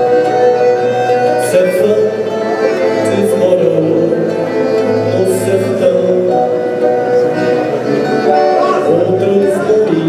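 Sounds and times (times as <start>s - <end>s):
accordion chords: 0.0s - 10.0s
acoustic guitar: 0.0s - 10.0s
plucked string instrument: 0.0s - 10.0s.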